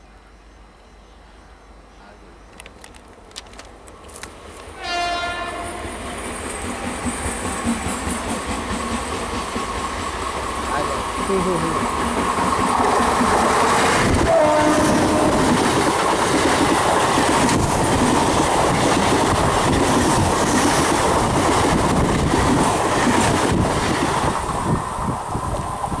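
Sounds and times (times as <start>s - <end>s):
train rumbling on rails: 0.0s - 26.0s.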